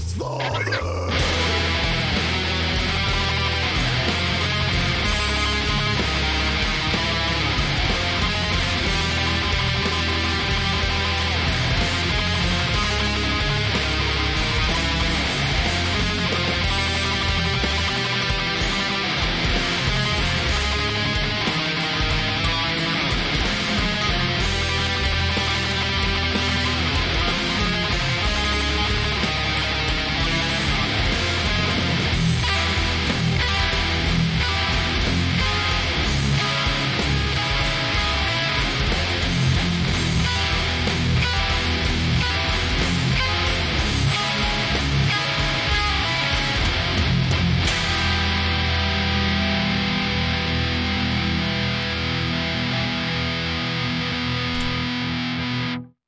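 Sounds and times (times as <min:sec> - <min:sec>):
distorted electric guitar riffs: 0:00.0 - 0:56.0.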